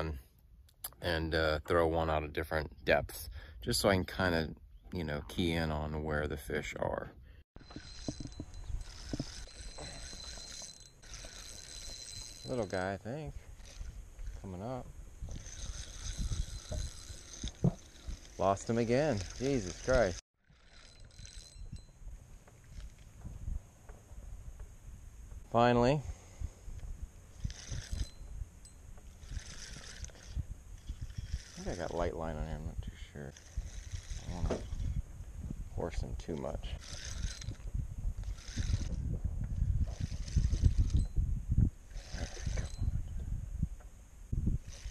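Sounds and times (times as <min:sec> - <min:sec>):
camera rubbing and knocks: 0:07.6 - 0:12.8, 0:15.2 - 0:20.2, 0:33.3 - 0:35.0, 0:36.8 - 0:41.2, 0:41.9 - 0:43.0
fishing reel cranking: 0:07.6 - 0:23.1, 0:27.3 - 0:35.0, 0:36.4 - 0:39.1, 0:39.8 - 0:41.2, 0:41.9 - 0:43.0, 0:44.6 - 0:44.9
low rumbling on microphone: 0:33.6 - 0:44.8.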